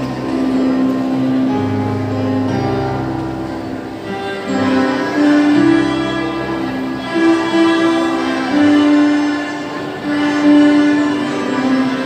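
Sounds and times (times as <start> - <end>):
melodica ensemble chords: 3.6 - 12.0.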